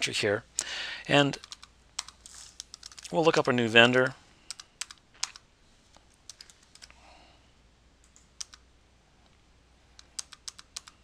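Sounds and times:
computer keyboard typing: 1.4 - 3.6, 4.5 - 5.4, 6.3 - 7.0, 8.0 - 8.6, 10.0 - 11.0.

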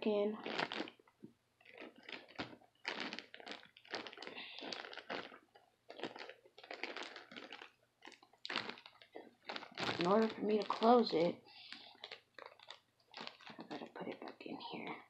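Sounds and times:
plastic bag crinkling: 0.4 - 14.9.

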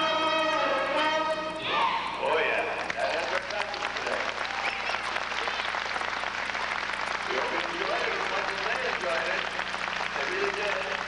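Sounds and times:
audience applauding: 2.8 - 11.0.

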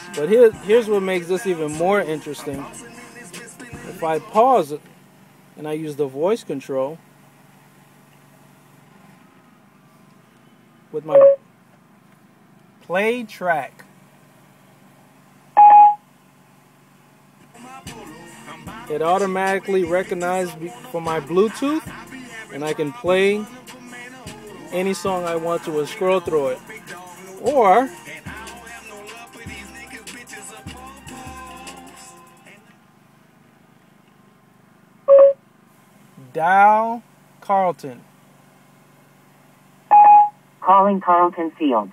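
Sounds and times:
music through car speakers: 0.0 - 4.4, 17.5 - 32.7
short electronic beep: 11.1 - 11.4, 15.6 - 16.0, 35.1 - 35.4, 39.9 - 40.4.

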